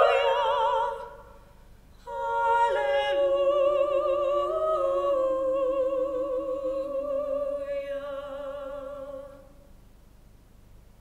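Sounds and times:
women singing in harmony: 0.0 - 1.4, 2.0 - 9.5.

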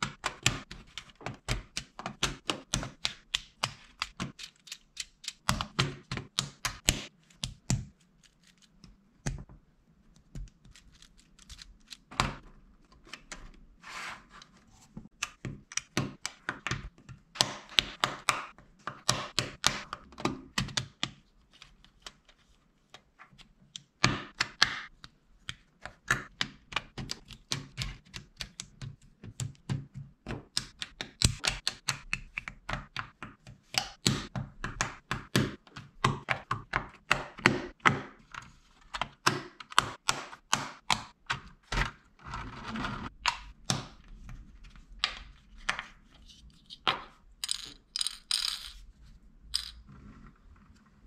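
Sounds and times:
plastic bricks clicking together: 46.7 - 48.8.

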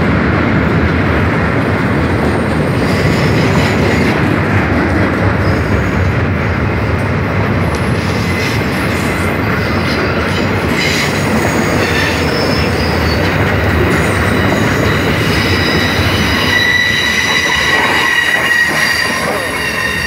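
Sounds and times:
train wheels rumbling on rails: 0.0 - 20.0
high-pitched wheel squeal: 8.4 - 13.3, 13.9 - 20.0.

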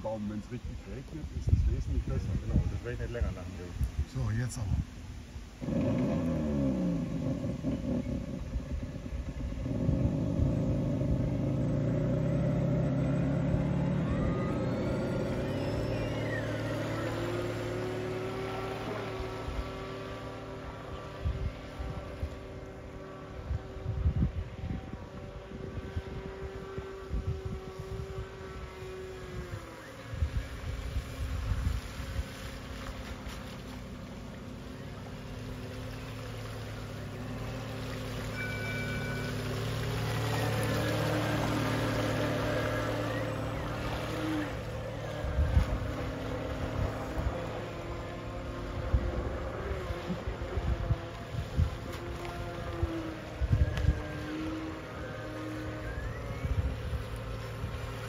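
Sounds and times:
model boat motor: 0.0 - 58.0
water rushing off hull: 0.0 - 58.0.

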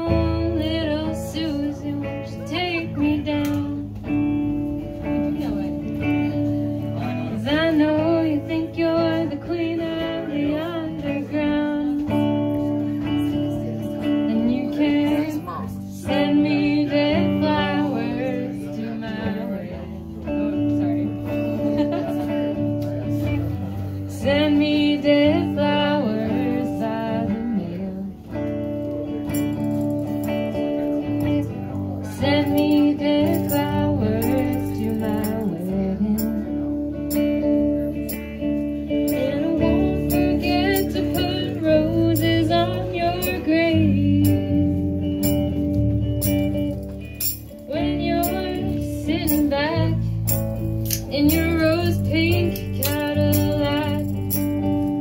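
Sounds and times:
woman singing: 0.0 - 22.3, 24.0 - 28.4, 31.0 - 46.6, 47.3 - 55.0
electric guitar chords: 0.0 - 55.0.

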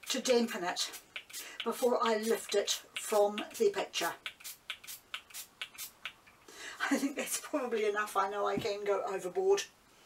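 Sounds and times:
spray bottle squirting: 0.8 - 6.2.

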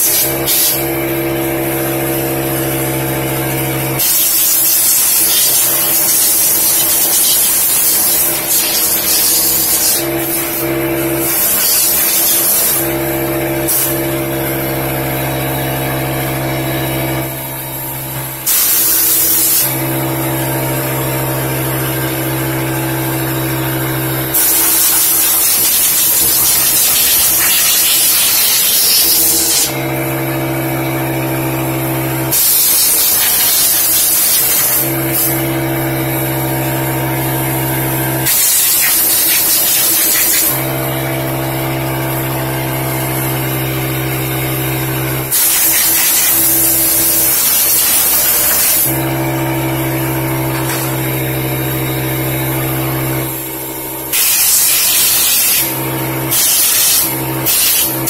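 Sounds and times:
compressed air hissing: 0.0 - 3.0, 3.9 - 14.6, 17.2 - 20.0, 24.2 - 30.2, 32.3 - 35.6, 38.2 - 40.7, 45.2 - 49.2, 50.4 - 51.2, 54.1 - 58.0.

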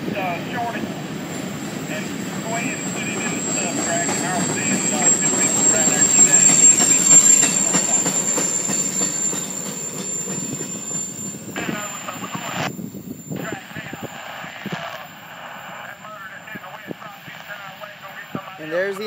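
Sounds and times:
high-pitched wheel whine: 0.0 - 14.5
freight train rolling past: 0.0 - 16.2.

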